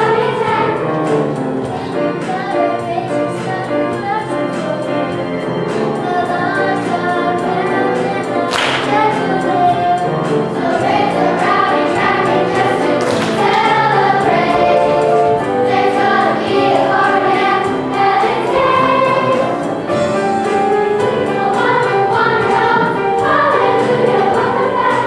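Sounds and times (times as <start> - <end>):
children's choir singing: 0.0 - 25.0
accompaniment with steady beat: 8.2 - 25.0.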